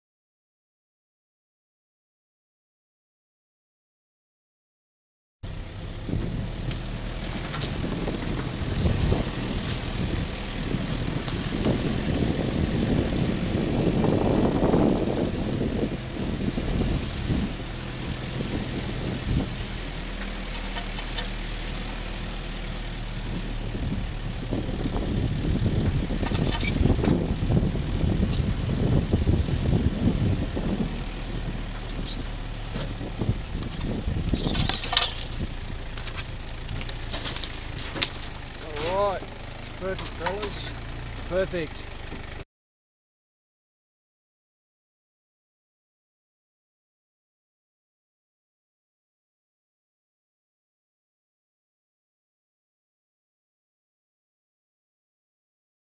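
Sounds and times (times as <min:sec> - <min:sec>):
vehicle jolts and rattles: 0:05.4 - 0:42.4
vehicle engine rumble: 0:05.4 - 0:42.5
wind on microphone: 0:05.9 - 0:19.7, 0:23.2 - 0:35.8.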